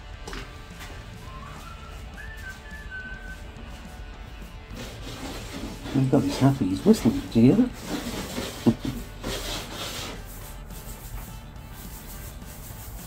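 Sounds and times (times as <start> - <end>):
man whistling a tune: 1.2 - 3.7.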